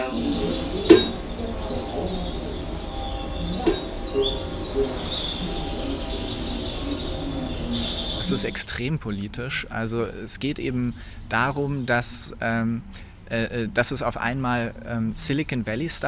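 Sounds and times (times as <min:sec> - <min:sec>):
steady low drone: 0:00.0 - 0:15.2
birds chirping: 0:00.0 - 0:16.0.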